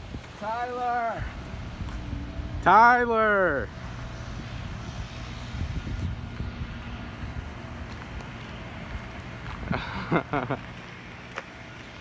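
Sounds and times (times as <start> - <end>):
car engines rumbling in traffic: 0.0 - 12.0.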